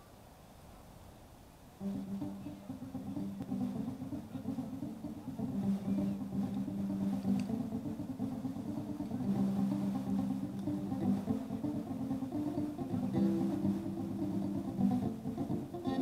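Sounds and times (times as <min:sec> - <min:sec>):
live band playing guitar-led intro: 0:01.8 - 0:16.0.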